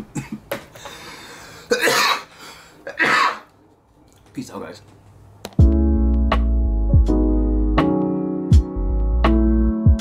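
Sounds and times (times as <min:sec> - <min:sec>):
man coughing: 0:00.0 - 0:00.5, 0:01.6 - 0:03.5
long breath out: 0:00.8 - 0:01.7.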